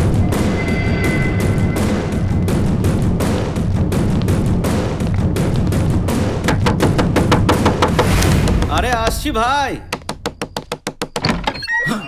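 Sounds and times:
rapid sharp knocks: 0:04.6 - 0:11.3.

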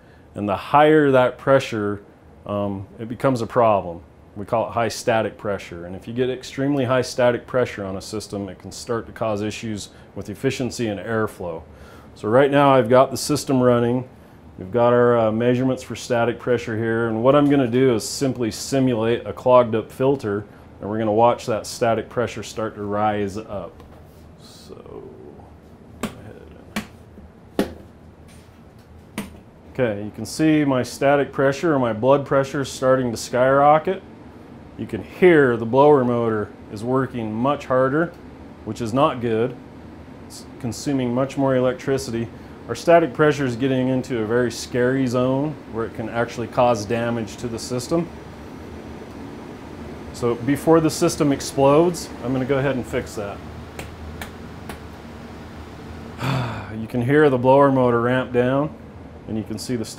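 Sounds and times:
furnace blower humming: 0:00.0 - 0:59.9.

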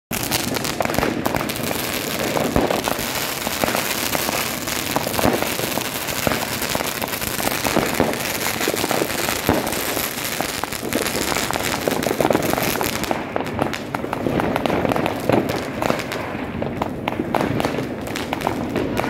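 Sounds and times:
fireworks bangs and pops: 0:00.1 - 0:19.0.

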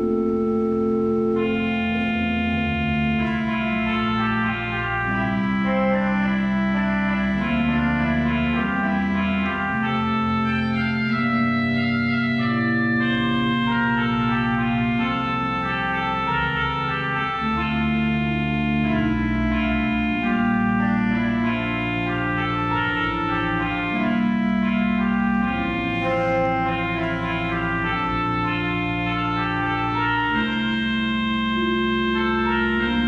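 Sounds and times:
church organ chords: 0:00.0 - 0:33.0.

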